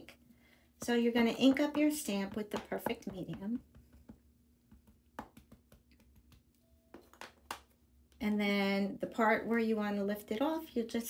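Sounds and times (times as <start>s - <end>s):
soft taps of ink pad: 2.3s - 7.8s.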